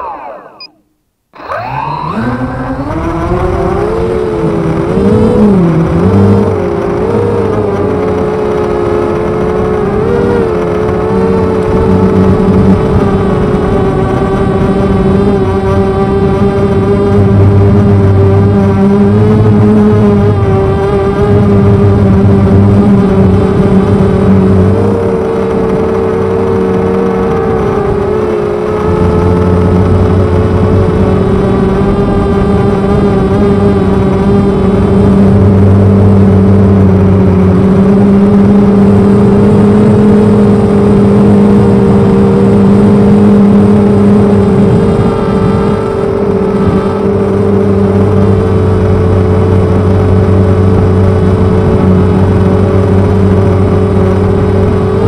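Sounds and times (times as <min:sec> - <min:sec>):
quadcopter motors buzzing: 0:00.0 - 0:00.8, 0:01.4 - 0:55.0.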